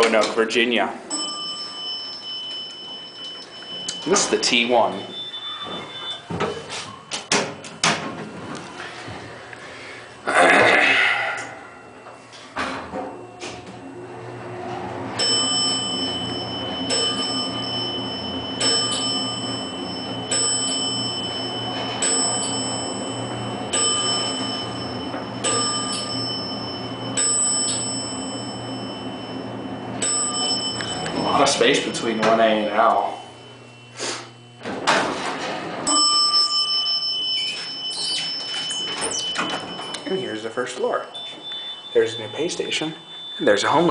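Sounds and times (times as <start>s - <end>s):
elevator chime ding: 1.1s - 9.0s, 15.2s - 33.5s, 35.7s - 43.9s
low hum of moving elevator: 1.2s - 9.6s, 34.4s - 43.9s.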